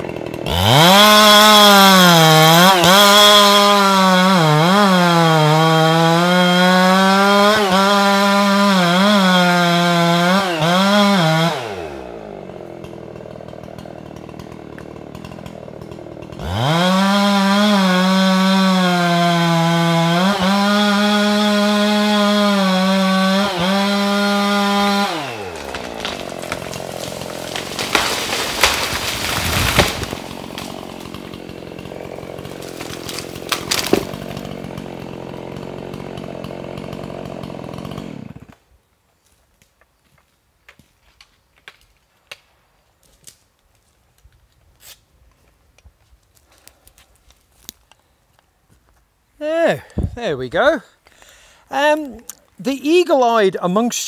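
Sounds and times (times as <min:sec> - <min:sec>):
chainsaw cutting wood: 0:00.0 - 0:38.8, 0:39.6 - 0:54.0
wood cracking: 0:00.0 - 0:49.1, 0:49.7 - 0:53.9
tree crashing down: 0:12.8 - 0:38.5.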